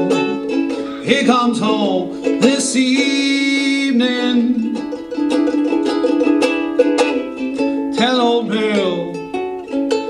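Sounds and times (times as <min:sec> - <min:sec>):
solo ukulele: 0:00.0 - 0:10.0.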